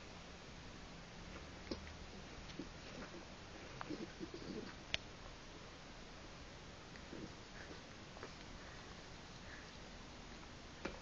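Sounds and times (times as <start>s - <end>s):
animal cooing: 3.8s - 4.8s.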